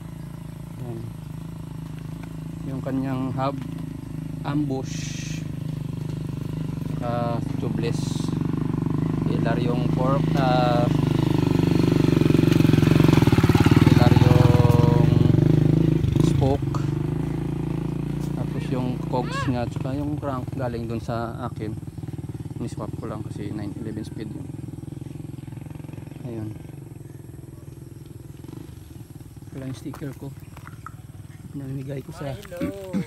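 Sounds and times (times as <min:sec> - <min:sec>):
engine drone: 0:00.0 - 0:33.0.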